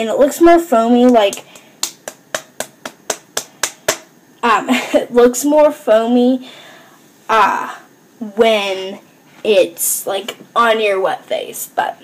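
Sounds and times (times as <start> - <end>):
wet palms slapping together: 1.0 - 4.1.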